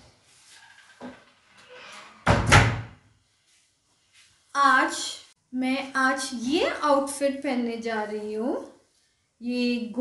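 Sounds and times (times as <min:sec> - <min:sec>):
wooden wardrobe doors banging shut: 0:02.1 - 0:03.0.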